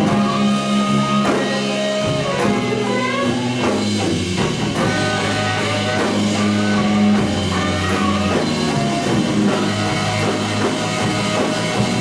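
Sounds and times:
bass guitar: 0.0s - 12.0s
drum kit: 0.0s - 12.0s
electric guitar lead: 0.0s - 12.0s.

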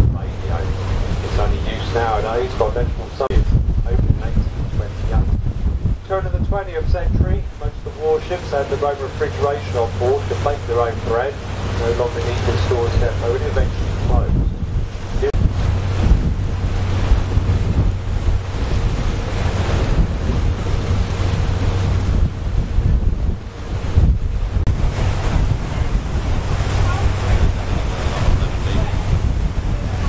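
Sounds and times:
boat engine humming: 0.0s - 30.0s
wind buffeting microphone: 0.0s - 30.0s.

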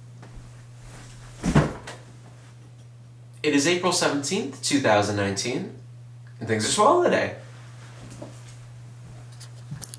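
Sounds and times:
steady low hum: 0.0s - 9.9s
person dropping into chair: 0.8s - 2.1s.

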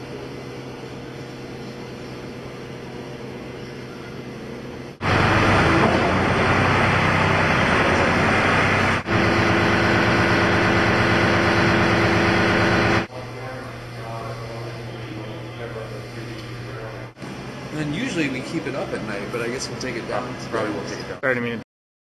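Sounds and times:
loud machinery hum: 0.0s - 21.2s.

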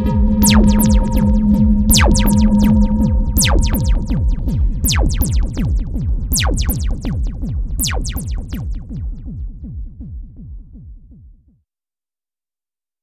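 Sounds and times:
falling synthesizer pitch sweeps: 0.0s - 8.8s
low bass bed: 0.0s - 11.0s.

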